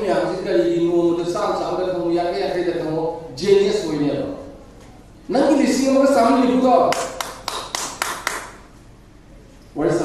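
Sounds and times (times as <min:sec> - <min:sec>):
sharp hand claps with echo: 0:06.9 - 0:08.6.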